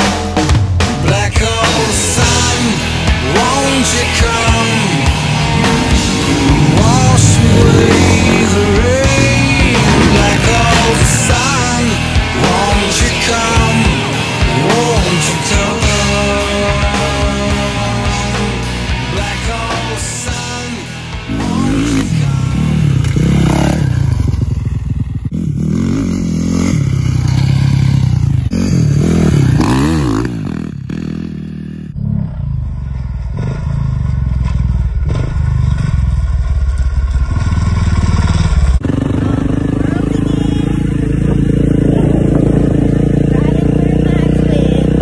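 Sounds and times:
dirt bike engine revving: 0.0s - 45.0s.

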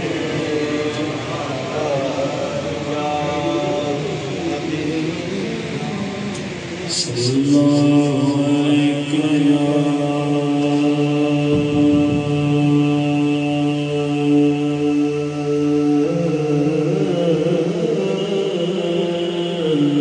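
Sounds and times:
man singing through pa: 0.0s - 20.0s.

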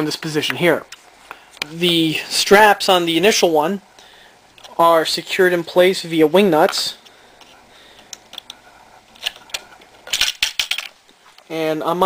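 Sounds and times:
small fastener clicks and rattles: 9.2s - 10.9s.

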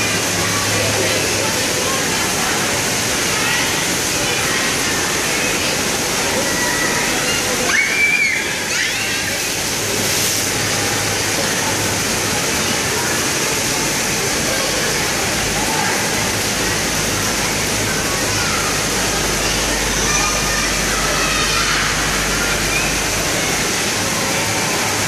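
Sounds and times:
running water rushing: 0.0s - 25.0s.

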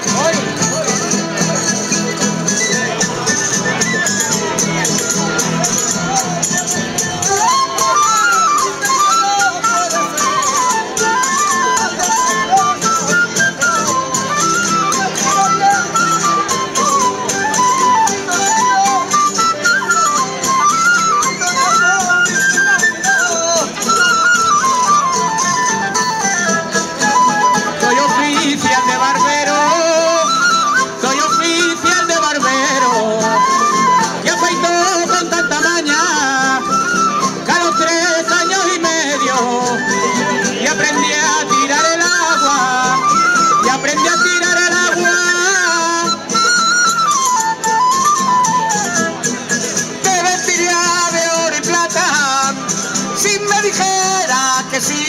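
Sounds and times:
string band melody: 0.0s - 55.0s
strummed guitar accompaniment: 0.0s - 55.0s.

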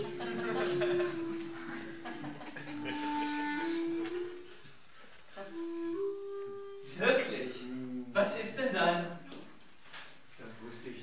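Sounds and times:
slow flute-like melody: 0.0s - 8.2s.

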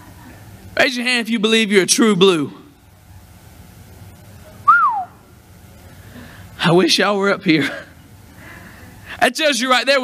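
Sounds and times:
low room hum: 0.0s - 10.0s
person whistling a note: 4.7s - 5.2s.

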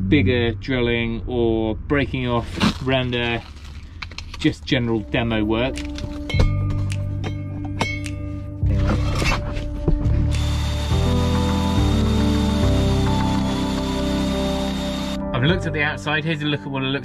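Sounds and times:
background music with bass: 0.0s - 3.5s, 4.4s - 17.0s
drill boring into stone: 10.3s - 15.2s.

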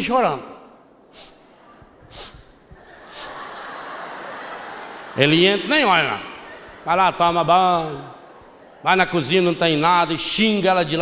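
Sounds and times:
man sniffing into microphone: 1.1s - 1.5s, 2.1s - 3.4s.

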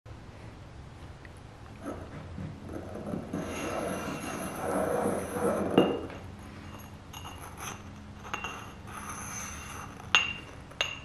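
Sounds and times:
low background rumble: 0.1s - 11.0s.

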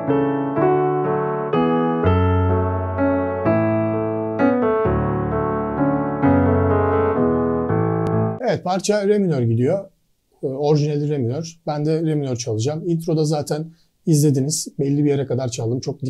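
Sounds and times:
piano keyboard chords: 0.0s - 8.6s.

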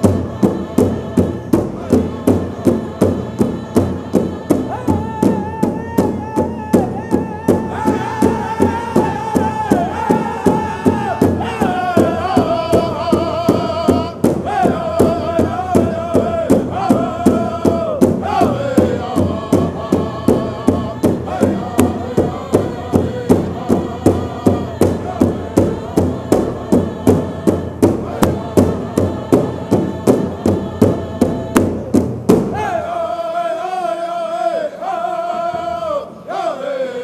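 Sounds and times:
large drum beating: 0.0s - 32.8s
voices singing in unison: 0.0s - 37.0s.

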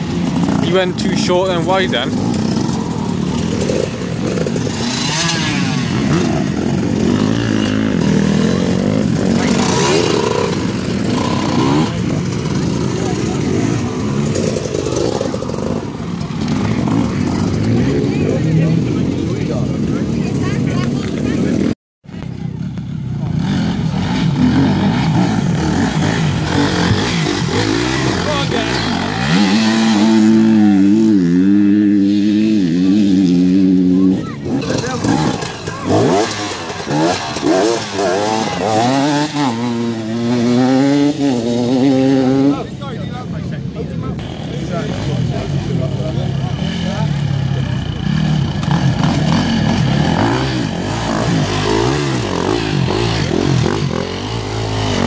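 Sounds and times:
dirt bike engine running steadily: 0.0s - 55.0s
dirt bike engines revving: 0.0s - 55.0s.

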